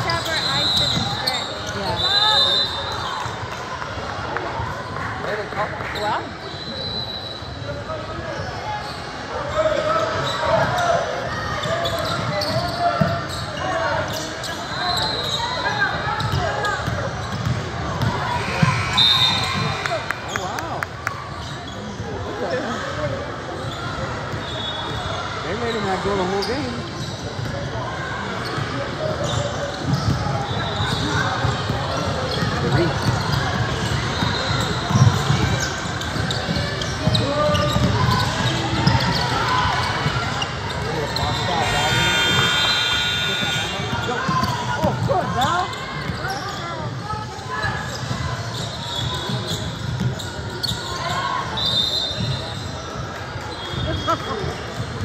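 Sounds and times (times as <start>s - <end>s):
voices in a gym: 0.0s - 55.0s
basketballs bouncing on hardwood: 16.2s - 18.2s.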